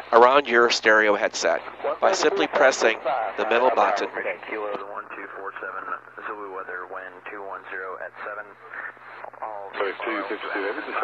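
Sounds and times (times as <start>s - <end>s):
radio speech: 0.0s - 11.0s
steady low hum: 0.0s - 11.0s.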